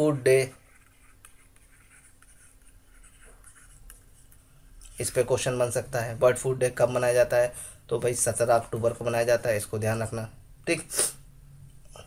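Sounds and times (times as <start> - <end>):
stylus scratching on tablet: 0.3 - 5.7.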